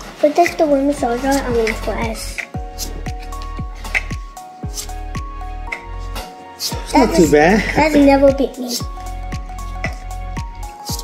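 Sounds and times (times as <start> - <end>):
electronic music with kick drum: 0.0 - 11.0.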